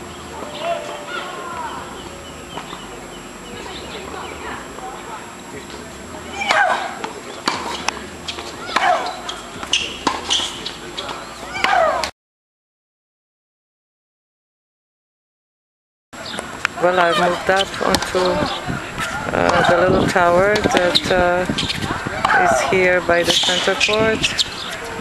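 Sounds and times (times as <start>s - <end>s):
racket hitting ball: 6.5s - 10.8s, 11.6s - 12.1s
ball bouncing on hard court: 7.5s - 10.7s
woman shrieking: 11.5s - 12.1s.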